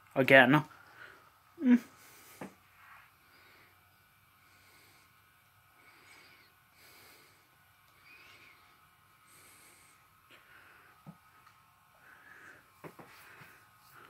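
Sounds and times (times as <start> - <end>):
soft breathing: 0.7 - 14.0.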